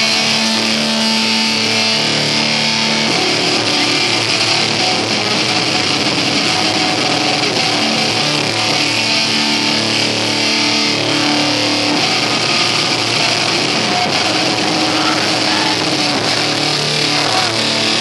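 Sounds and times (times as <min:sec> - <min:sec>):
live metal band playing: 0:00.0 - 0:18.0.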